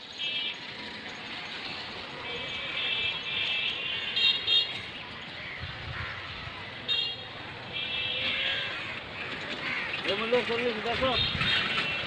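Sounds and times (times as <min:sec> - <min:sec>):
street traffic: 0:00.0 - 0:12.0
vehicle horns honking: 0:02.3 - 0:04.9, 0:06.9 - 0:08.7, 0:11.0 - 0:12.0.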